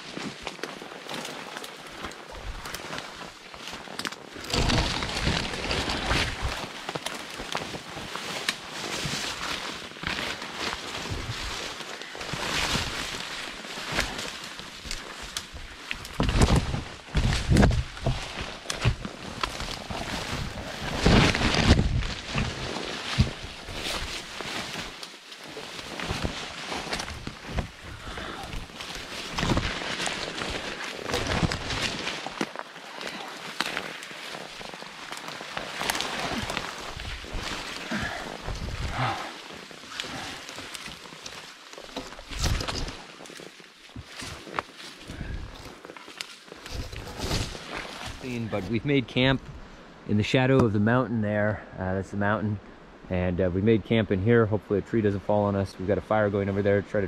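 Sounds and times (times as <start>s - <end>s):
footsteps through brush: 0.0s - 49.5s
branches rustling and snapping: 0.0s - 49.7s.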